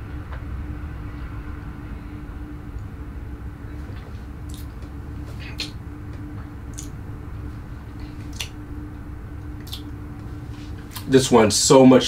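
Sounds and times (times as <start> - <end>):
low room hum: 0.0 - 12.0
wet lip smacks: 6.7 - 6.9, 8.3 - 8.6, 9.6 - 9.9.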